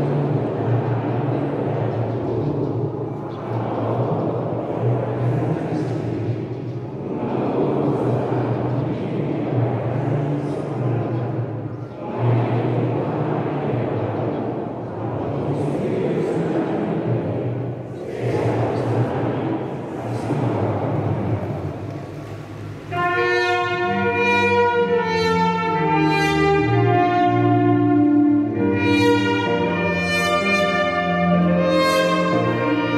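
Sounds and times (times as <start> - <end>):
congregation singing a hymn: 0.0 - 32.9
brass ensemble held chords: 7.0 - 32.9.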